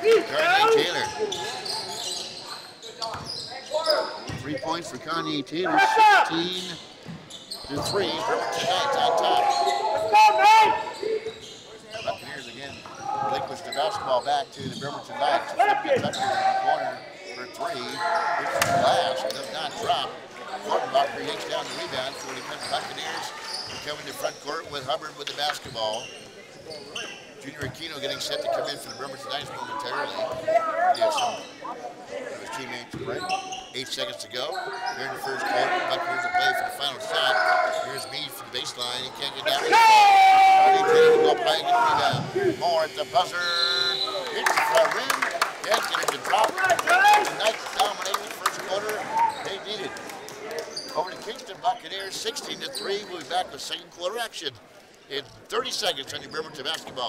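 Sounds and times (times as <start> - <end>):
voices: 0.0 - 7.0, 7.6 - 26.1, 26.7 - 54.6
sneakers squeaking: 0.7 - 5.4, 6.3 - 15.0, 15.8 - 20.1, 21.5 - 31.8, 32.9 - 39.7, 50.6 - 53.3
people shouting: 5.6 - 6.4, 7.7 - 11.0, 39.5 - 42.6.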